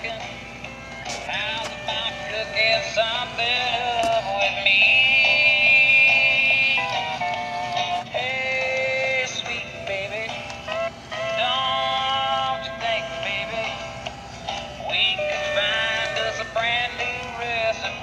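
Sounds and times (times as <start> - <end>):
tinny toy tune with singing: 0.0 - 18.0.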